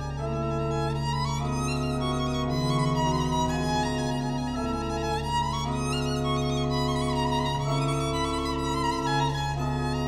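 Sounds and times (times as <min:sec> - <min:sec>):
pipe organ chords: 0:00.0 - 0:10.0
violin playing: 0:00.0 - 0:10.0.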